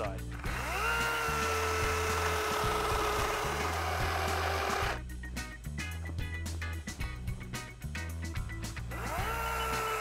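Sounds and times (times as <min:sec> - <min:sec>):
electric chainsaw cutting log: 0:00.4 - 0:05.0, 0:08.9 - 0:10.0.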